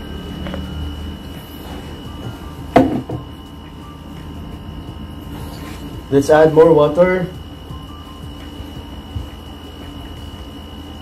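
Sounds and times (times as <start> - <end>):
low hum: 0.0 - 11.0
sharp knock: 2.7 - 3.2.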